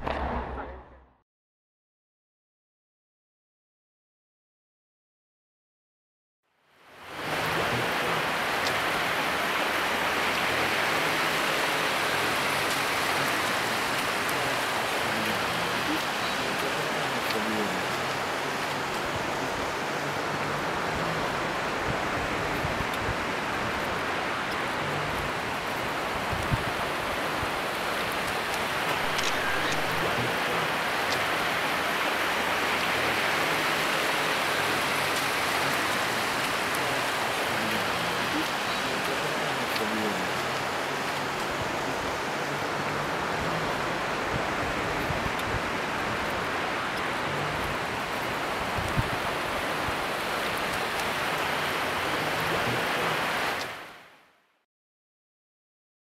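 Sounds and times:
river rushing over rocks: 0:06.8 - 0:54.2
faint voices: 0:07.2 - 0:09.4, 0:10.4 - 0:27.5, 0:28.9 - 0:31.9, 0:32.7 - 0:49.4, 0:51.5 - 0:53.5.

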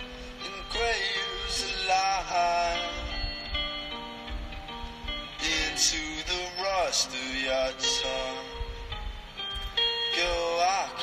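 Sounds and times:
person singing long notes: 0:00.0 - 0:04.0, 0:04.8 - 0:09.0, 0:09.9 - 0:11.0
soft instrumental backing: 0:00.0 - 0:11.0.

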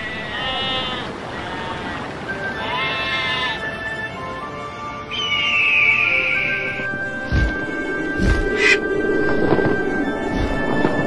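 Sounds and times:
eagle crying: 0:00.0 - 0:03.7, 0:05.1 - 0:06.8
sheep bleating: 0:00.0 - 0:03.7
background music: 0:02.0 - 0:11.0.

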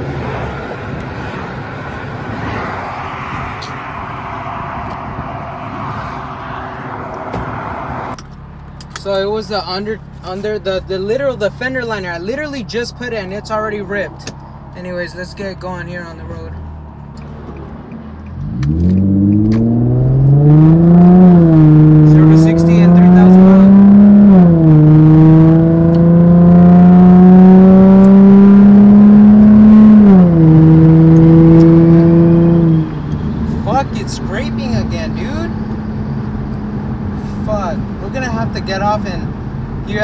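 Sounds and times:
car engine accelerating: 0:00.0 - 0:40.0.

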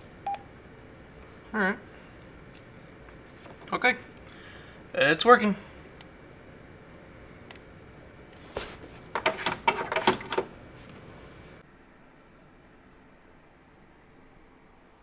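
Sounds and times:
radio handset clicks and knocks: 0:09.2 - 0:10.5.

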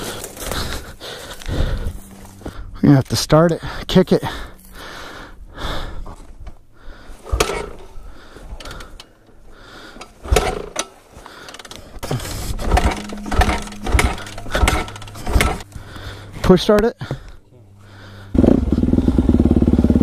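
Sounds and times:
kickstarter ratcheting: 0:10.0 - 0:15.7.

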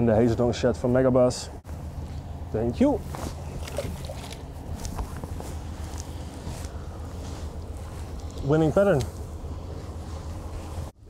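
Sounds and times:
boat motor humming: 0:01.7 - 0:11.0.

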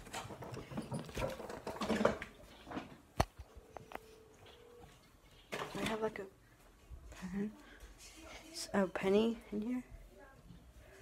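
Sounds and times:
handling knocks and rustles: 0:00.0 - 0:03.2.

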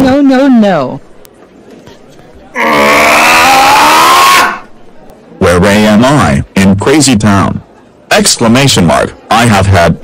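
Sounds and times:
distorted drawn-out vocal cry: 0:02.6 - 0:04.7.

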